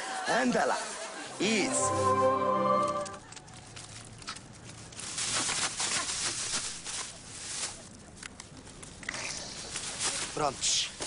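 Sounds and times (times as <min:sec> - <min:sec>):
rustling with light clicks: 0:03.2 - 0:11.0.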